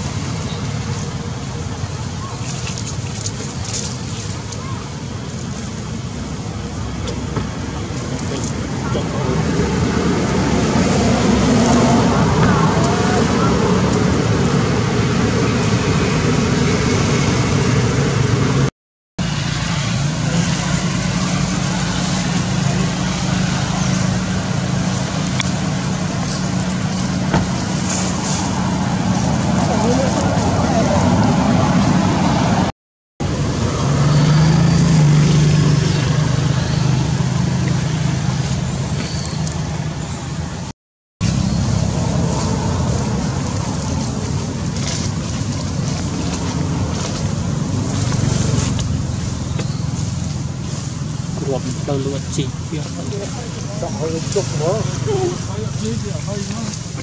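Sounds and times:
low mechanical drone: 0.0s - 57.0s.

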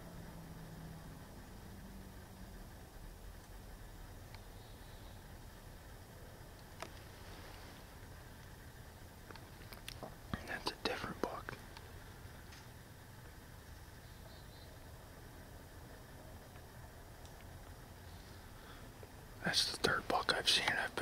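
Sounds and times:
faint background noise: 0.0s - 21.0s
person whispering: 10.3s - 11.6s, 19.4s - 21.0s.

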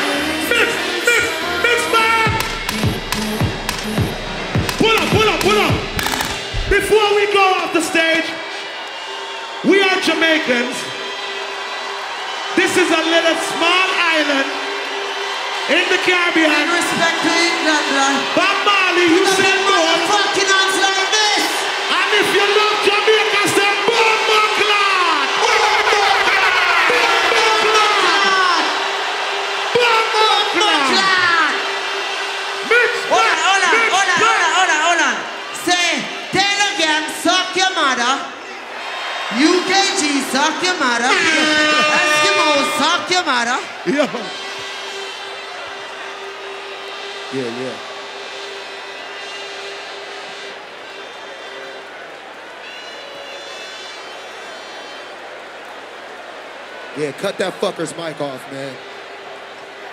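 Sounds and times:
crowd voices in arena: 0.0s - 59.9s
wailing siren effect: 41.1s - 42.8s
rising and falling whistle tone: 52.6s - 55.1s.

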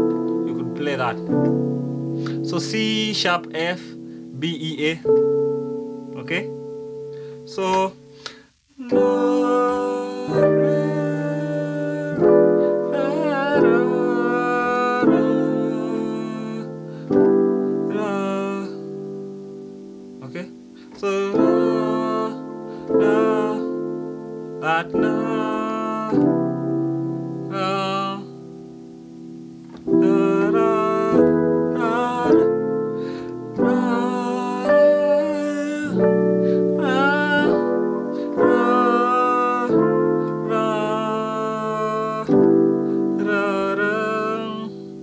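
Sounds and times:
electric piano gospel chords: 0.0s - 45.0s.

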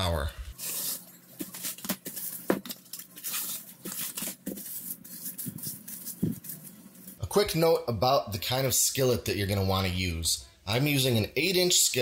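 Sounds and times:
plastic wrap crinkling: 0.5s - 7.2s.

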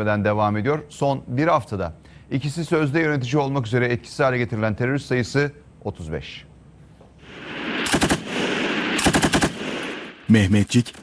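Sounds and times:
machine gun firing bursts: 7.9s - 10.1s.

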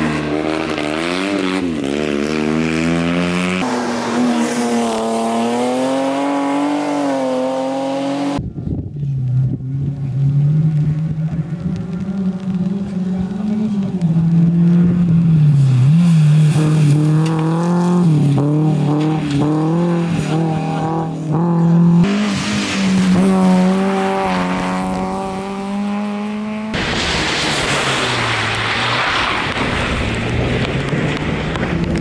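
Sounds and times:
distant car engine: 0.0s - 8.4s, 9.0s - 32.0s
rally car engine revving: 0.0s - 8.4s, 9.0s - 32.0s.

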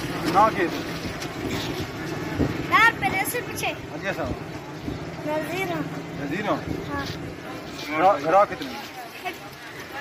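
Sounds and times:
street traffic noise: 0.0s - 10.0s.

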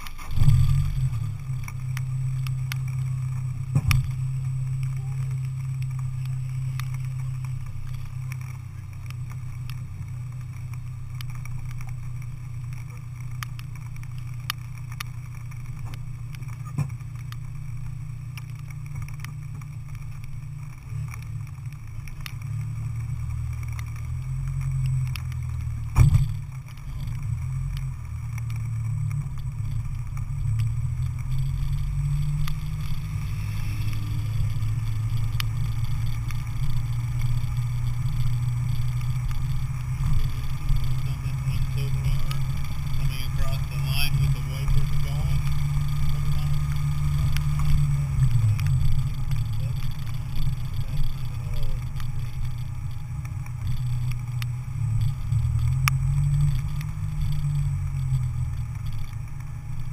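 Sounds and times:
car engine idling: 0.0s - 59.9s.

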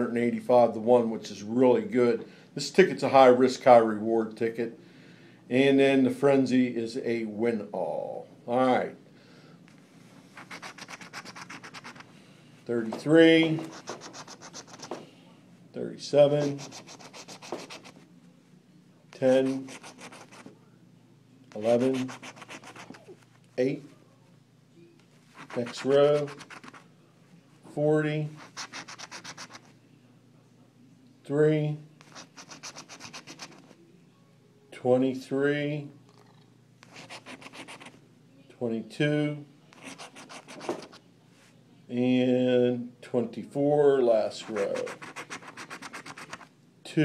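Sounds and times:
coin scratching lottery ticket: 10.4s - 12.1s, 13.6s - 15.0s, 16.4s - 18.0s, 19.3s - 20.4s, 21.6s - 23.1s, 25.4s - 26.8s, 28.4s - 29.7s, 32.0s - 33.7s, 36.9s - 37.9s, 39.8s - 41.0s, 44.4s - 46.5s.

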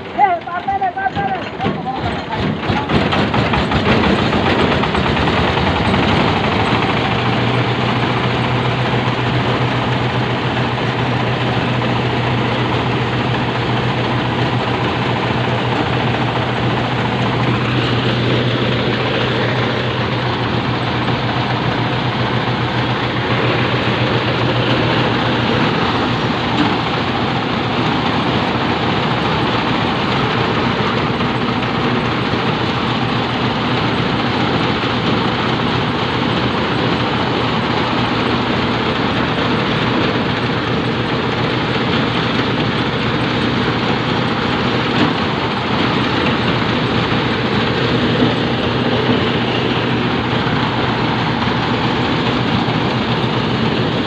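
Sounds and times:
diesel engine running: 0.0s - 54.0s
threshing drum clattering: 0.0s - 54.0s.

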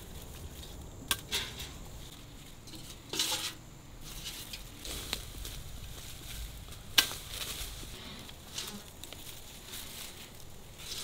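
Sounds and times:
rustling canes and leaves: 0.0s - 11.0s.

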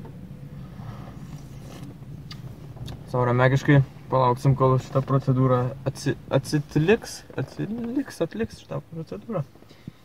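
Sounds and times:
muffled car wash machinery hum: 0.0s - 10.0s.

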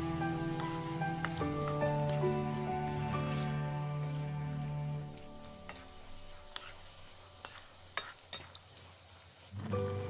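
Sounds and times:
sugar syrup sizzling: 0.0s - 10.0s
wooden spatula stirring: 0.0s - 10.0s.

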